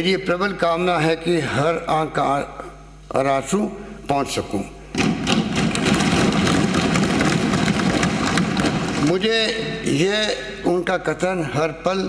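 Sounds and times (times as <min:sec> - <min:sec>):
people thumping desks: 0:04.9 - 0:09.8.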